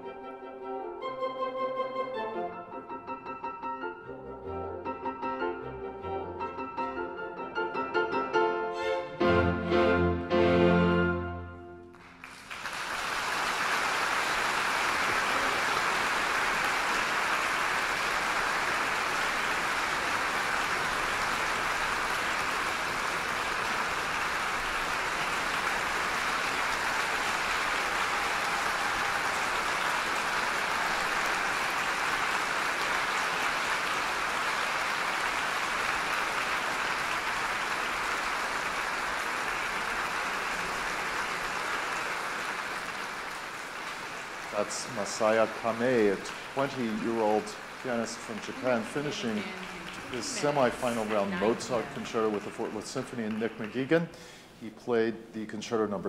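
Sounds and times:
large audience applauding: 0:11.9 - 0:54.4.

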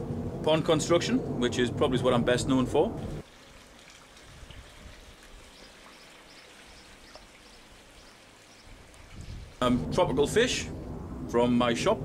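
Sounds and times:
water trickling into pond: 0:03.2 - 0:09.6
drip-like ticks: 0:05.2 - 0:09.2.

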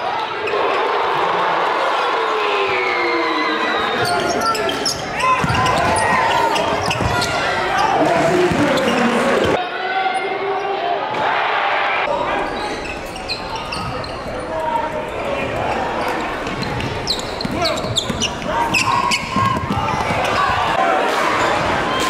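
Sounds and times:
echoing voices: 0:00.0 - 0:22.0
basketball bouncing on court: 0:05.3 - 0:07.4, 0:08.3 - 0:09.0, 0:16.4 - 0:20.6.

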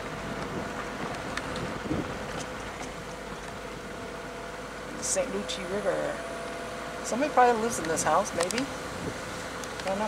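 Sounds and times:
car engine and road noise: 0:00.0 - 0:10.0.

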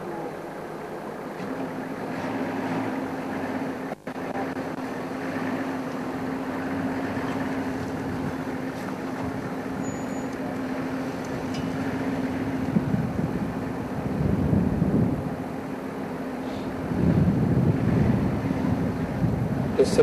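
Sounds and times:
vehicle engine idling: 0:00.0 - 0:20.0.

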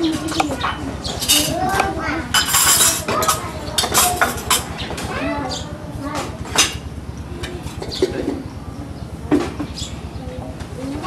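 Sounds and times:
voices talking: 0:00.0 - 0:11.0
dishes and cutlery clinking: 0:00.1 - 0:04.7.

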